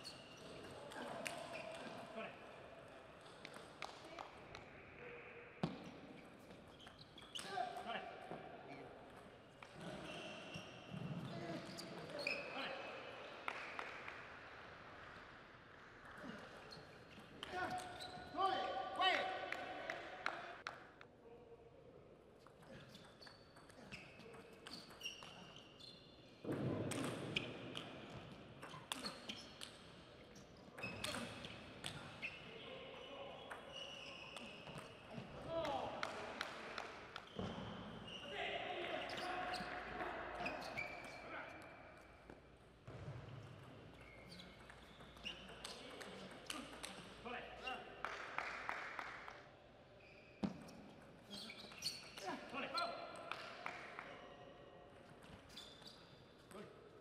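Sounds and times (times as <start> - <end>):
voices and shouts in a hall: 0.0 - 23.0, 23.7 - 42.6, 44.1 - 55.7.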